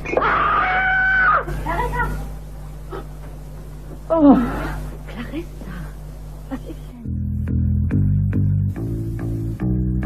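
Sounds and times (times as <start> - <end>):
woman screaming in fright: 0.2 - 1.6.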